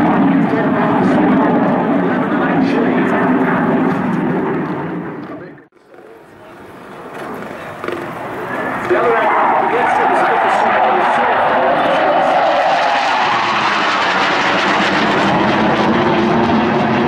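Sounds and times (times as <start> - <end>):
jet roar: 0.0 - 17.0.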